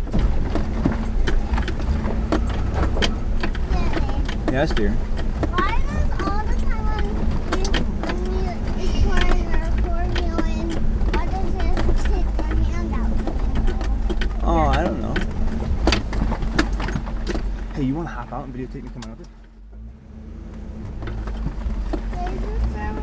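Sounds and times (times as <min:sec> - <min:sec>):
engine and drivetrain rumble: 0:00.0 - 0:23.0
knocks and rattles: 0:00.0 - 0:23.0
indistinct voices: 0:01.2 - 0:16.7.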